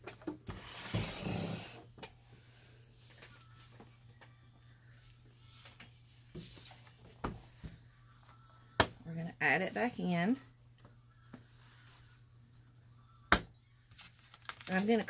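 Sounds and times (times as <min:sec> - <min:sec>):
binder dragged on table: 0:00.5 - 0:01.8
machine scraping across wooden table: 0:00.5 - 0:01.8.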